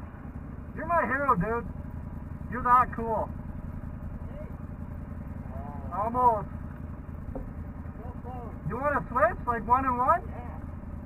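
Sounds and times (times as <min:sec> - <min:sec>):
atv engine idling: 0:00.0 - 0:11.0.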